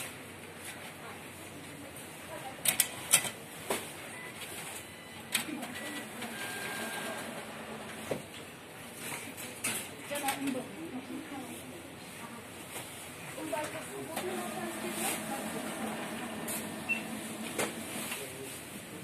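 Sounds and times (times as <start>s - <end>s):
shop background noise: 0.0s - 19.0s.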